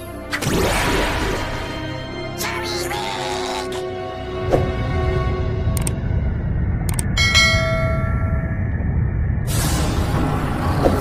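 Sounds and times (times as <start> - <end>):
steady low rumble: 4.2 - 11.0.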